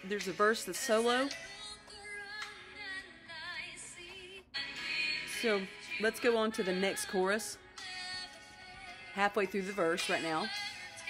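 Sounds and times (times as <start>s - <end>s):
worship song accompaniment: 1.4s - 9.2s.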